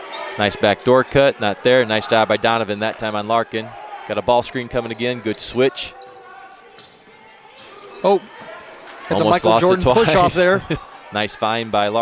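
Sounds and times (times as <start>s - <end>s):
shoes squeaking on court: 4.6s - 10.1s.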